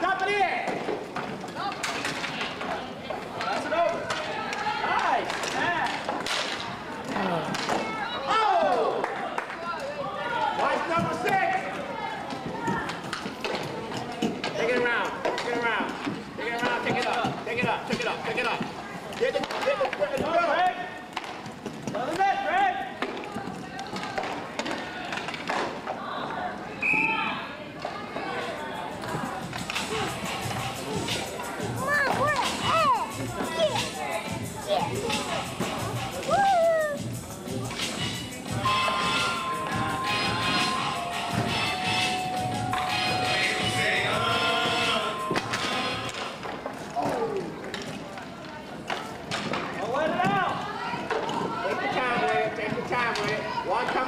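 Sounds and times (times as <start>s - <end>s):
hockey sticks and puck clacking: 0.2s - 26.0s, 29.0s - 34.0s, 44.5s - 54.0s.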